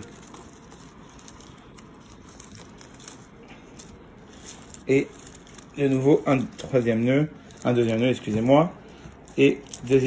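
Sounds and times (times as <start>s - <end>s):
dry leaf rustling: 0.0s - 10.0s.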